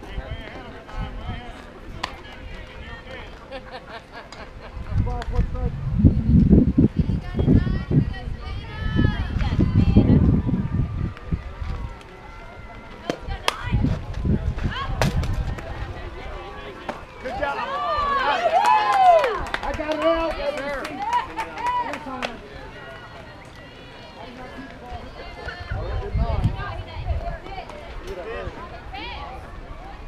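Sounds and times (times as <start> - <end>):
voices shouting and cheering: 4.7 - 30.0.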